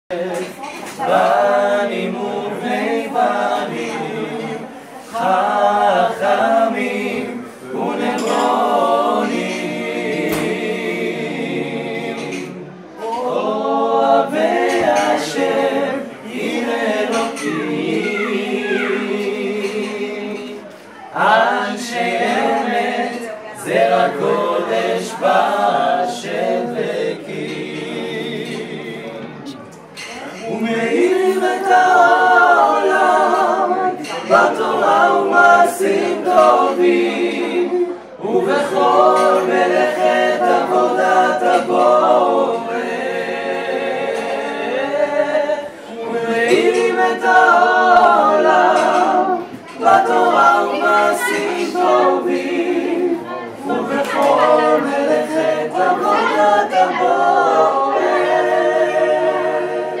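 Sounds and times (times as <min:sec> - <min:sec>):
male vocal group singing harmony: 0:00.1 - 1:00.0.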